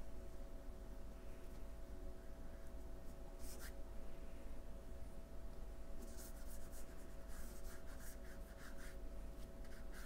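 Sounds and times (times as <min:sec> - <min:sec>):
paintbrush brushing over paper: 0:06.0 - 0:09.0.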